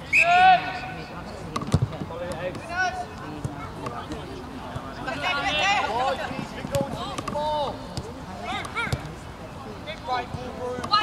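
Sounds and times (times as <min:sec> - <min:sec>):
people shouting calls: 0:00.0 - 0:01.1.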